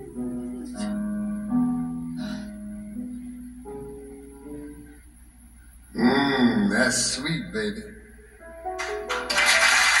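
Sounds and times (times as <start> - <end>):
audience applause: 9.1 - 10.0.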